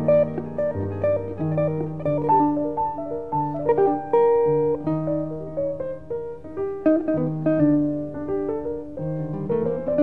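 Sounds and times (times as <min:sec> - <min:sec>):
slow jazz piano and guitar: 0:00.0 - 0:10.0.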